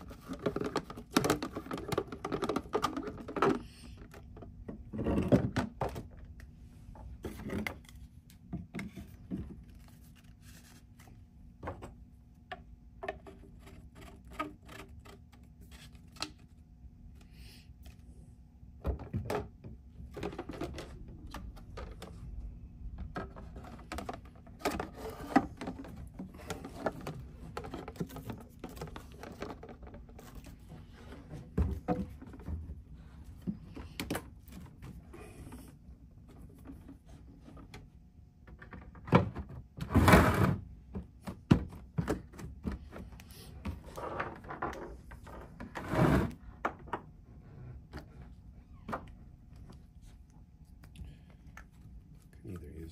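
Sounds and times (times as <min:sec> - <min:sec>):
hard plastic parts clicking and knocking: 0:00.0 - 0:06.3, 0:18.8 - 0:30.5.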